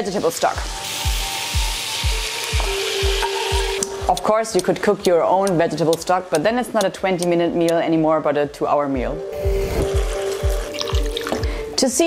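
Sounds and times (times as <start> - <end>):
background music with steady beat: 0.0 - 8.0, 8.8 - 12.0.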